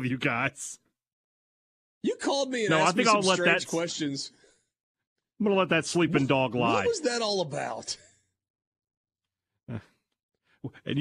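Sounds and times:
man saying uh: 2.7 - 4.0, 6.1 - 7.1.

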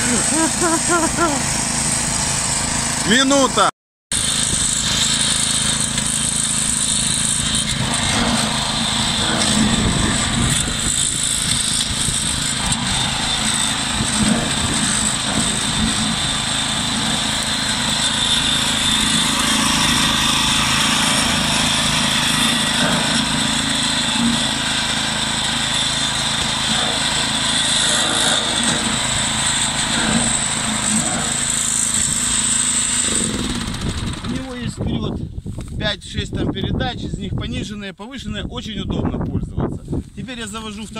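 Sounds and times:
small petrol engine running: 0.0 - 34.8.

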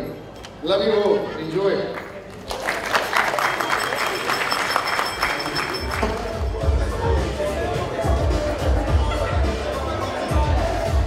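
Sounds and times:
crowd voices: 0.0 - 11.0
audience applause: 2.3 - 6.4.

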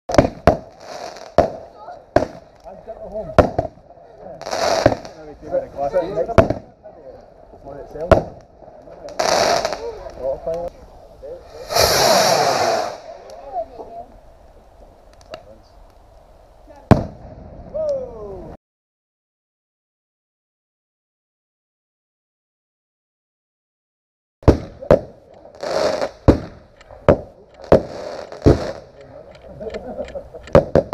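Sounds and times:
firework shells bursting: 0.1 - 3.8, 4.4 - 5.2, 11.4 - 13.6, 24.4 - 30.9
firework crackling: 0.1 - 17.8, 24.4 - 30.9
firework rocket whoosh: 11.4 - 13.8.

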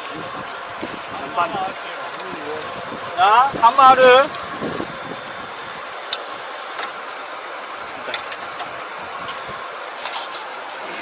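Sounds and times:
steady background noise: 0.0 - 11.0.

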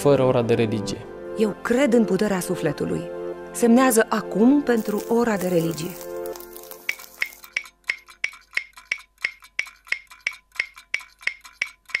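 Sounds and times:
background music chord: 0.0 - 6.7
steady ticking with high ring: 6.3 - 12.0.

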